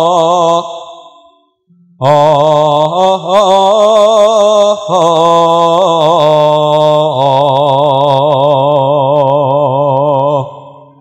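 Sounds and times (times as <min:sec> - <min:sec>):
man singing a long note with vibrato: 0:00.0 - 0:11.0.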